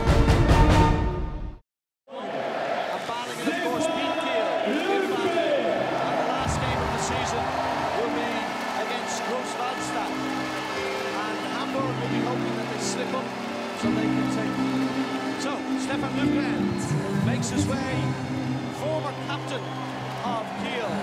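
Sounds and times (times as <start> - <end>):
theme music: 0.0 - 1.6, 5.3 - 21.0
crowd cheering and chanting: 2.1 - 21.0.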